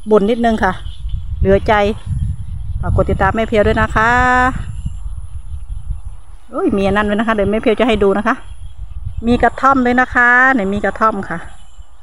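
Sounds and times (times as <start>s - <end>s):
woman speaking: 0.0s - 2.1s, 2.8s - 4.7s, 6.5s - 8.5s, 9.2s - 11.6s
wind buffeting microphone: 0.0s - 12.0s.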